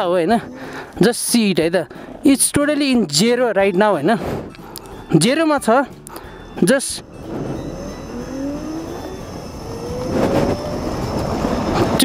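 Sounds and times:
electric motor whining: 6.4 - 12.0
wind rushing past microphone: 7.0 - 12.0.

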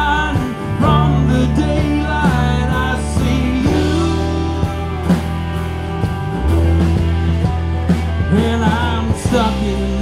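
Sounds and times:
bass: 0.0 - 10.0
drums: 0.0 - 10.0
guitars: 0.0 - 10.0.

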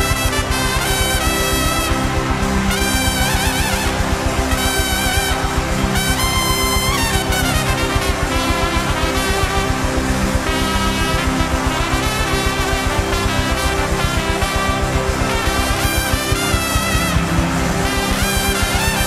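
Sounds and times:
trumpet solo: 0.0 - 19.0
worship band with steady beat: 0.0 - 19.0.

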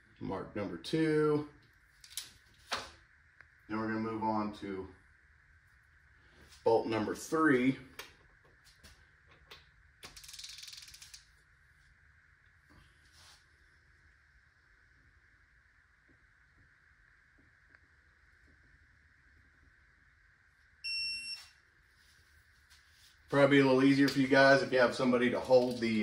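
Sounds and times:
faint steady hum: 0.0 - 26.0
torque wrench beep: 20.8 - 21.6.

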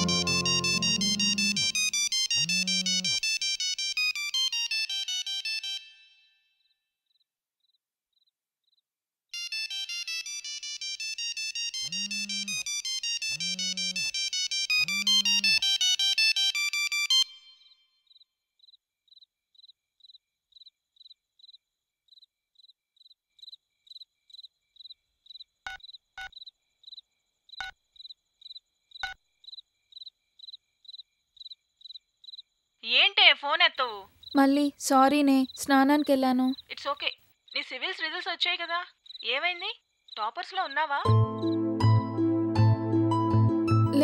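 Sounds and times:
mobile phone ringtone: 0.0 - 2.0, 4.5 - 6.0, 9.4 - 17.4
phone vibration buzzes: 0.0 - 3.2, 11.9 - 15.6.

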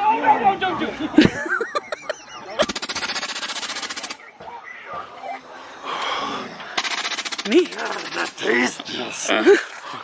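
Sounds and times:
rapid rattling cracks: 2.6 - 4.2, 6.8 - 8.7.

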